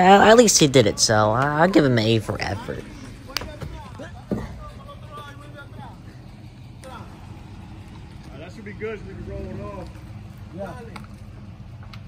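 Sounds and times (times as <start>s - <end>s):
distant voices talking: 0.0s - 12.0s
truck engine idling: 0.0s - 12.0s.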